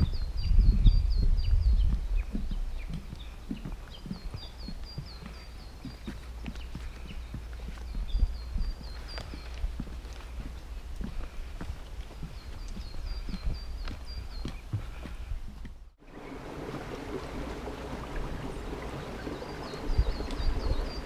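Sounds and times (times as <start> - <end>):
small bird singing: 0.0 - 11.4, 12.0 - 16.4, 18.6 - 21.0
footsteps on wooden boardwalk: 0.0 - 21.0.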